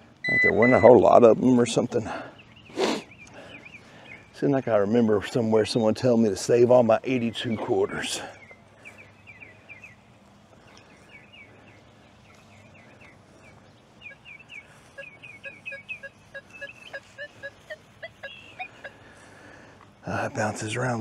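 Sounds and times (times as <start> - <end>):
bird chirping: 0.0 - 5.8, 7.0 - 19.6
metal detector beeps: 0.2 - 1.2.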